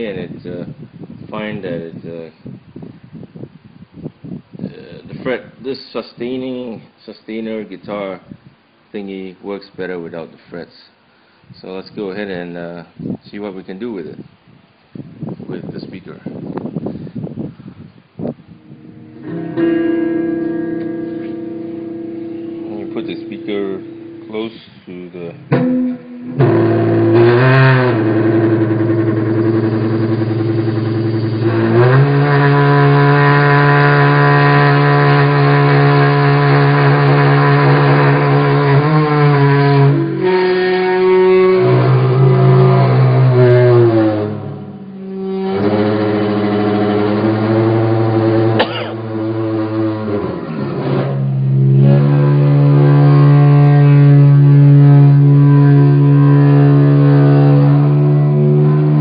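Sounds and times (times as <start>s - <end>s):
electric guitar feedback notes: 18.2s - 59.0s.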